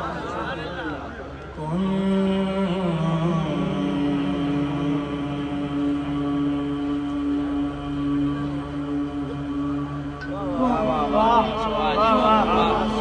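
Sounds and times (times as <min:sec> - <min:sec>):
man singing a long held note: 0:01.6 - 0:13.0.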